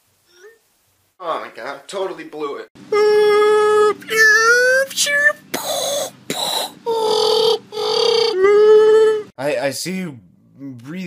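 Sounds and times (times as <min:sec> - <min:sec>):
young man yelling: 0:03.0 - 0:06.1.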